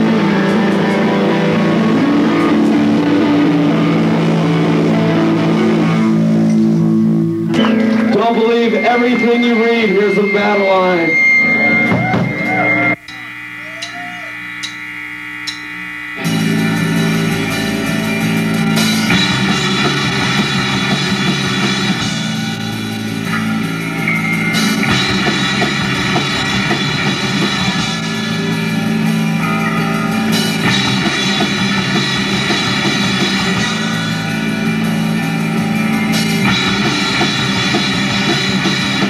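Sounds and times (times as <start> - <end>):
rock band playing: 0.0 - 14.3, 15.6 - 39.0
electric guitar and bass: 0.0 - 39.0.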